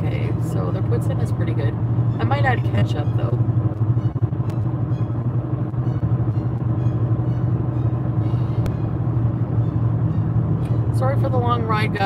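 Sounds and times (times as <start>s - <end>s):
car cabin road and engine hum: 0.0s - 12.0s.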